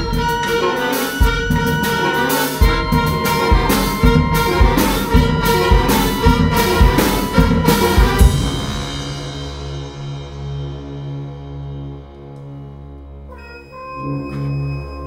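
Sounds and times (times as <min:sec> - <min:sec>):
drum strokes: 0:00.0 - 0:12.0
low held tone: 0:00.0 - 0:12.6, 0:13.3 - 0:15.0
wind band playing loudly: 0:00.0 - 0:15.0.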